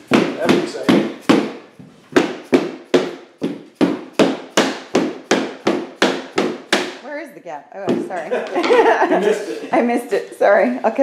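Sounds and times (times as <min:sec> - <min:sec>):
rubber mallet striking tapping block: 0:02.2 - 0:07.0.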